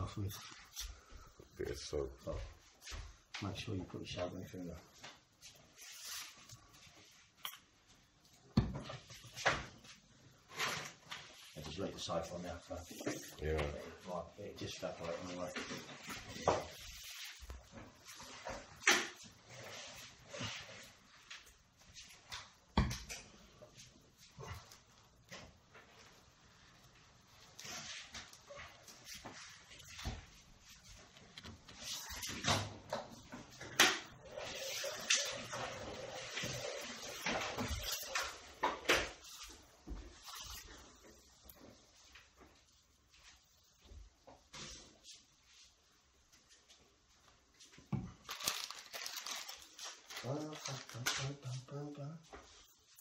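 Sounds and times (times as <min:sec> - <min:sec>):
plastic bottle handling and rubbing: 0:24.4 - 0:42.0, 0:48.0 - 0:51.6.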